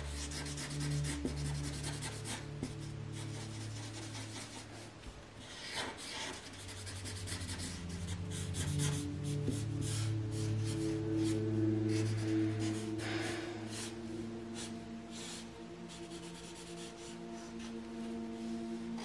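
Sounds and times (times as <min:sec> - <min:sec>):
soft background music: 0:00.0 - 0:19.0
marker scratching on paper: 0:00.1 - 0:04.8, 0:05.4 - 0:12.8, 0:14.6 - 0:17.7.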